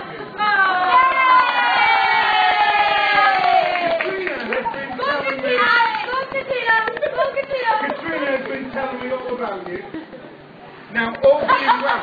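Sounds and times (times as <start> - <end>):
women cheering and shrieking: 0.4 - 3.9.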